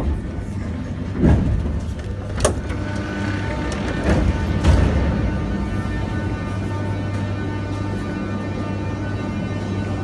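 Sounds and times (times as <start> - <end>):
metro car doors clunking: 0.0 - 7.6
low rumble of standing train: 0.0 - 10.0.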